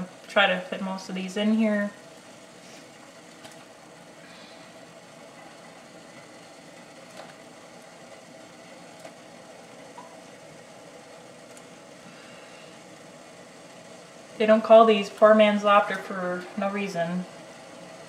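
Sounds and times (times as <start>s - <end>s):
water boiling and bubbling: 0.0s - 18.0s.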